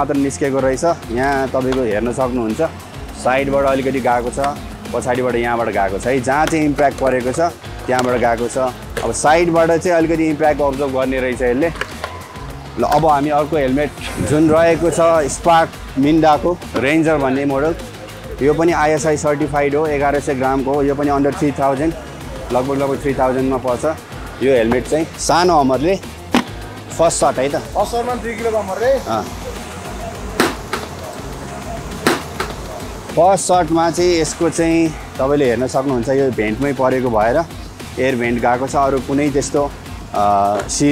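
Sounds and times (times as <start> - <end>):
man talking: 0.0 - 11.8, 12.8 - 26.1, 26.9 - 30.3, 33.1 - 40.9
background music: 0.0 - 40.9
hammer striking helmet: 30.4 - 30.9.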